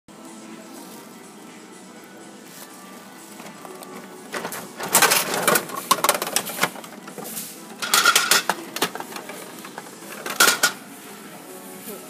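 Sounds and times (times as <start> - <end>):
faint background music: 0.1 - 12.0
plastic capsule clattering: 3.4 - 7.2, 7.8 - 10.8.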